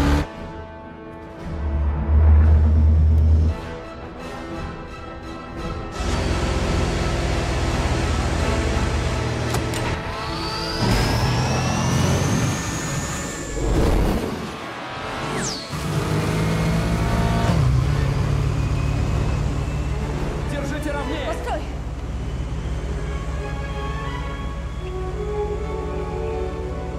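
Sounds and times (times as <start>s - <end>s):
orchestral score: 0.0s - 15.8s, 19.1s - 26.9s
vehicle engines running: 6.0s - 9.9s, 15.8s - 26.9s
long rising whine: 10.1s - 16.0s.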